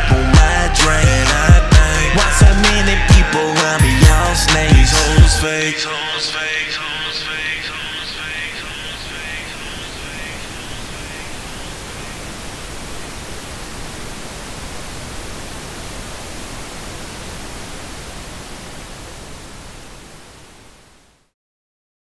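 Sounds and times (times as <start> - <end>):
television static hiss: 5.8 - 21.4.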